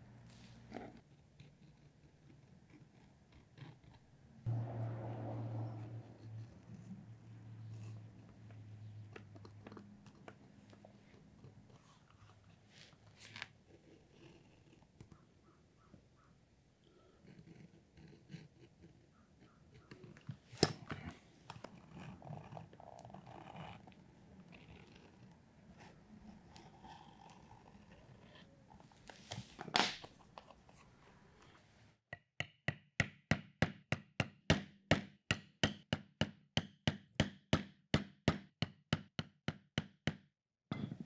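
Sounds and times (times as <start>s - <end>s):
mallet striking chisel through leather: 32.4s - 40.8s.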